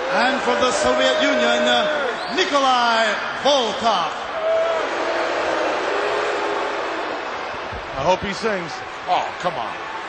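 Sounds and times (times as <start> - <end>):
crowd roar: 0.0 - 10.0.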